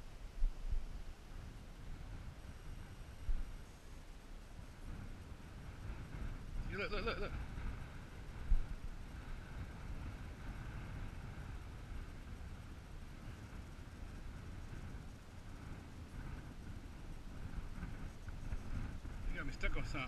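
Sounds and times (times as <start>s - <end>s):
wind rumble on microphone: 0.0s - 20.0s.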